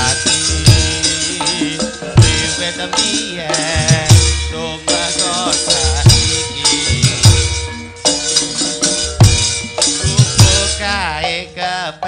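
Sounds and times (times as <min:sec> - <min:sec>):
gamelan music: 0:00.0 - 0:12.0.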